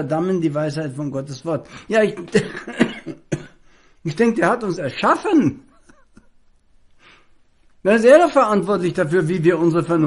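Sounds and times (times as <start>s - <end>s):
man coughing: 2.1s - 3.6s.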